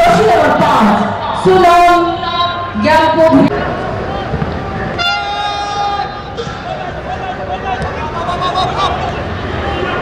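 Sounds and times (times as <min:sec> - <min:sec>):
stadium crowd noise: 0:00.0 - 0:10.0
horn long flat note: 0:05.0 - 0:05.9.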